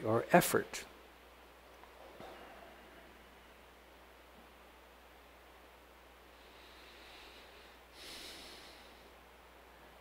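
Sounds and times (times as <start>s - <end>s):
faint steady hum: 0.0s - 10.0s
man breathing close to microphone: 6.3s - 9.2s.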